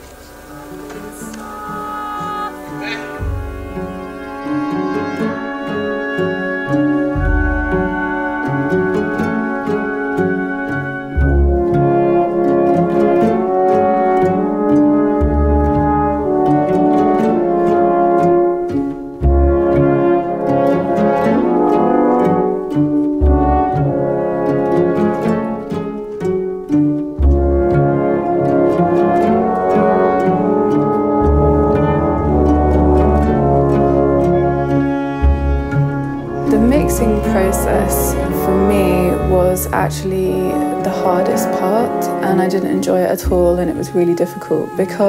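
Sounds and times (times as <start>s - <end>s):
deep bass notes: 0.0s - 9.8s, 10.6s - 21.4s, 22.7s - 25.1s, 27.0s - 44.5s
french horns holding chords: 0.0s - 45.0s
strings and harps repeated notes: 0.0s - 45.0s.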